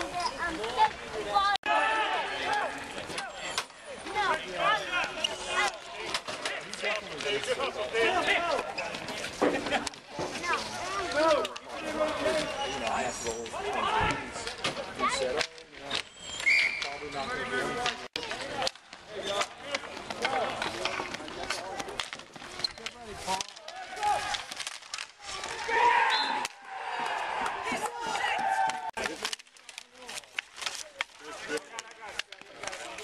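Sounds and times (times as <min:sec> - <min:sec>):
hockey sticks clacking: 0:00.0 - 0:01.6, 0:02.3 - 0:33.0
players calling out: 0:25.2 - 0:29.1.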